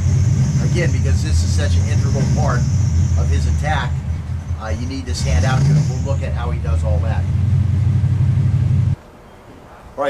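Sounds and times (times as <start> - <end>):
loud low rumble: 0.0 - 9.0.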